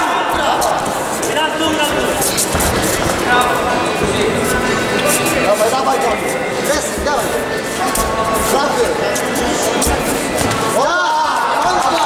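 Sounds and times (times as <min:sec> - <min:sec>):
footwork on ring canvas: 0:00.0 - 0:12.0
voices calling out: 0:00.0 - 0:12.0.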